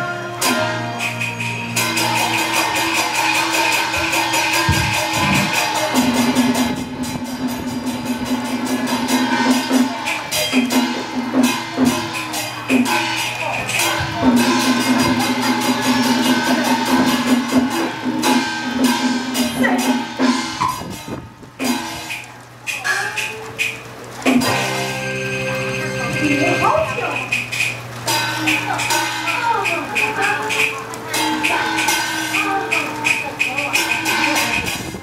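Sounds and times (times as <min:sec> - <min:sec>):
quick percussion strokes: 0:00.0 - 0:25.5, 0:26.1 - 0:35.0
sustained melody line: 0:24.3 - 0:35.0.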